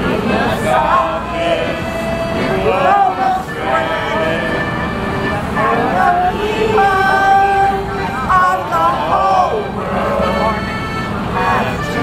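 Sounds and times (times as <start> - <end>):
accordion playing: 0.0 - 12.0
city traffic rumbling: 0.0 - 12.0
small group singing: 0.0 - 12.0.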